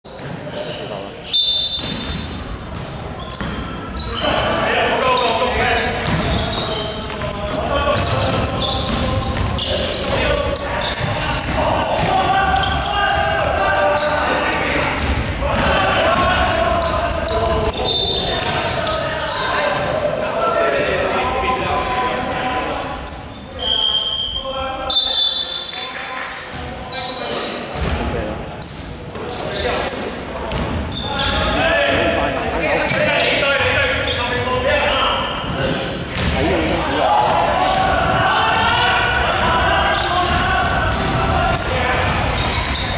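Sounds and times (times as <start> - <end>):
basketball bouncing on court: 0.1 - 0.5, 1.7 - 4.1, 5.4 - 13.6, 14.8 - 19.0, 30.5 - 32.2, 35.3 - 36.5, 37.2 - 42.9
sneaker squeaks: 0.1 - 20.0, 21.3 - 42.9
voices calling out: 0.4 - 27.9, 28.6 - 42.9.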